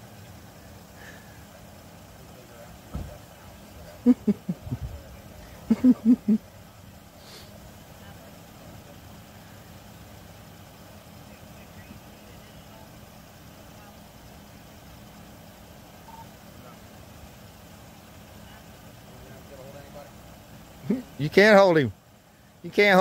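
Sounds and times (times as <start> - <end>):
vehicle engine idling: 0.0 - 23.0
faint indistinct voices talking: 0.5 - 21.1.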